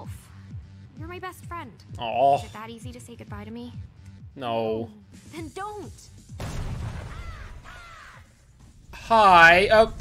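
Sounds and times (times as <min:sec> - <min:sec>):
cartoon bird cawing: 0:07.0 - 0:08.4.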